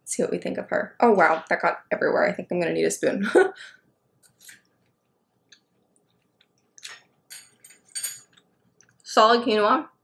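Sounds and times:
person chewing food: 4.2 - 9.0.

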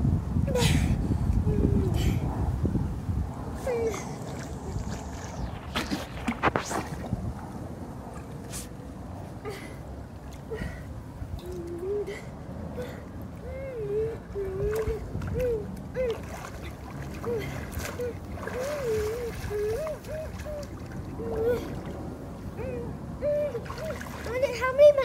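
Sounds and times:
wind rumble on microphone: 0.0 - 25.0
pool water sloshing: 3.3 - 12.4, 13.0 - 25.0
sharp water splashes: 3.9 - 7.3, 16.0 - 22.1, 23.6 - 24.6.

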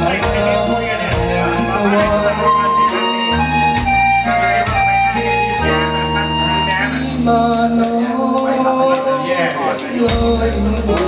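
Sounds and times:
instrumental backing music: 0.0 - 11.0.

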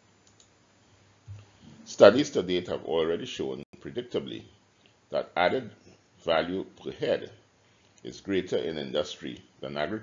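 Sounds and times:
faint click: 0.2 - 0.6
man speaking: 1.7 - 7.4, 8.0 - 10.0.

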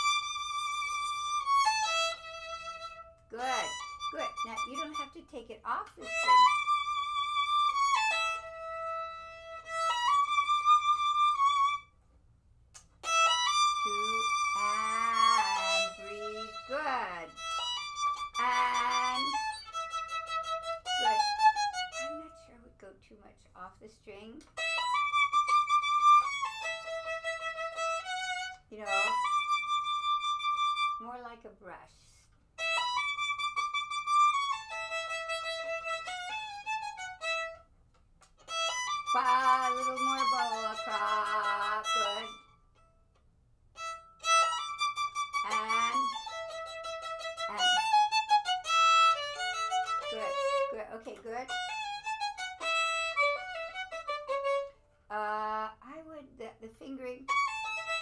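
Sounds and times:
violin bowed notes: 0.0 - 12.0, 12.8 - 22.8, 24.0 - 31.4, 32.6 - 43.0, 43.7 - 55.8, 57.0 - 58.0.

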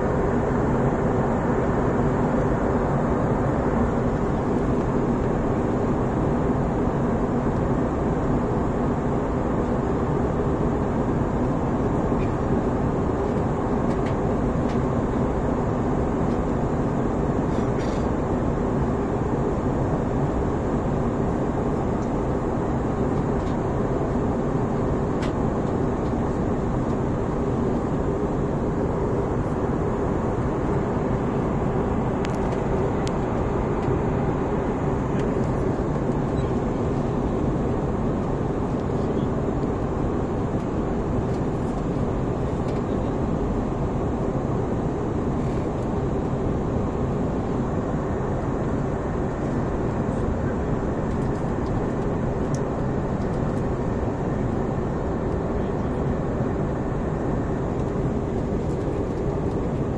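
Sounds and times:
jet airliner cabin drone: 0.0 - 59.9.

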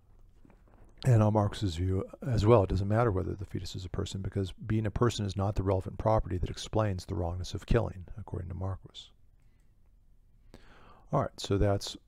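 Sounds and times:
faint intake of breath: 10.4 - 11.1.

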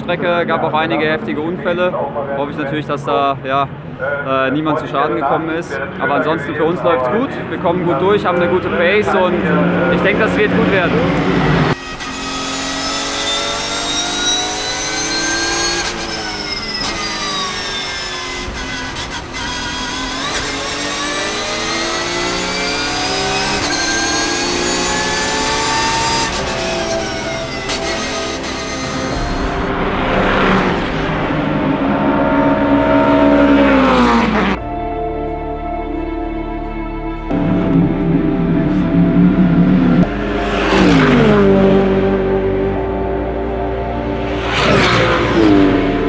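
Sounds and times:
race car passing by: 4.8 - 34.6, 37.3 - 46.0
race car engine revving: 6.1 - 34.7, 37.3 - 46.0.

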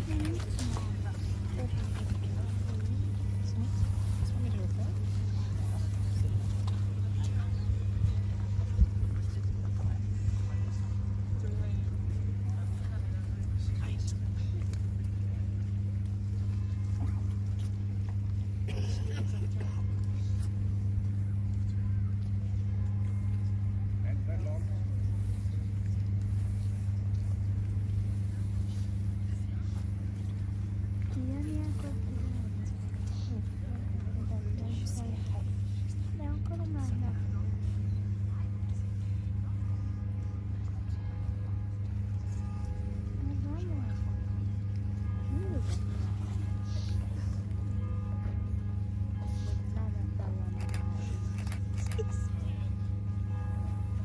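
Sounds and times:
indistinct chatter: 0.0 - 54.0
steady low hum: 0.0 - 54.0.

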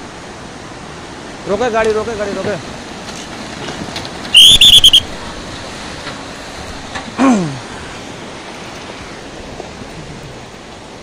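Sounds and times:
river rushing: 0.0 - 11.0
shrill trilling whistle: 4.3 - 5.1.

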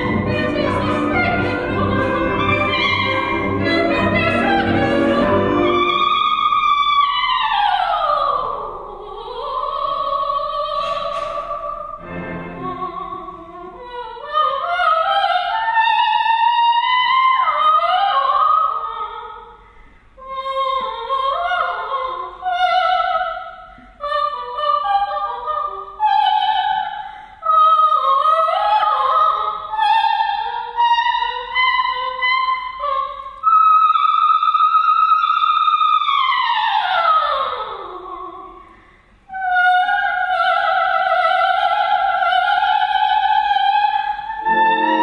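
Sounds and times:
operatic soprano singing: 0.0 - 19.6, 20.2 - 38.6, 39.3 - 45.0.

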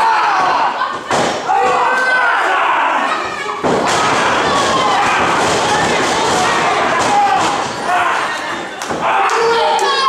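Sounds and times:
voices shouting: 0.0 - 10.0.

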